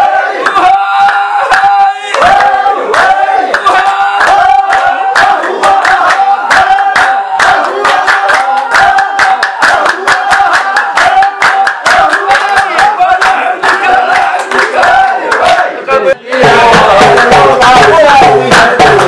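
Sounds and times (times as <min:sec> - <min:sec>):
men clapping on a steady beat: 0:00.0 - 0:19.0
men singing or chanting together: 0:00.0 - 0:19.0.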